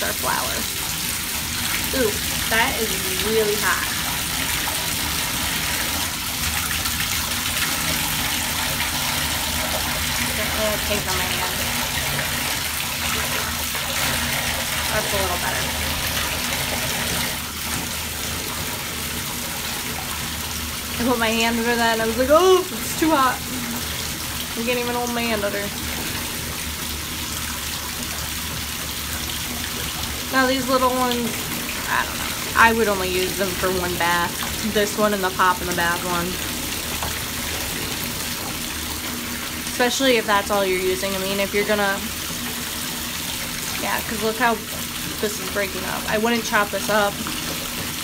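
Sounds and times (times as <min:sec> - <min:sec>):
water pouring into bathtub: 0:00.0 - 0:48.0.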